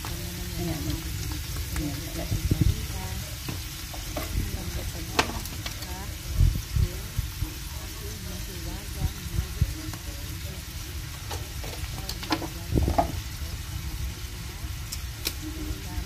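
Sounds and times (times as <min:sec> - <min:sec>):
vegetables sizzling in frying pan: 0:00.0 - 0:16.0.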